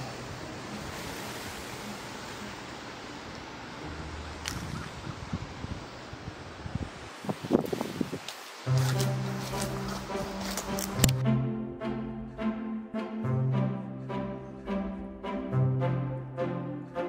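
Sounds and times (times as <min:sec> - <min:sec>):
wind-like rustle: 0:00.0 - 0:11.2.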